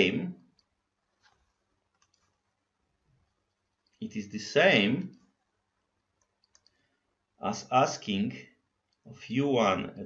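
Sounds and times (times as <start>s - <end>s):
person speaking: 0.0s - 0.4s, 4.0s - 5.1s, 7.4s - 8.5s, 9.1s - 10.0s.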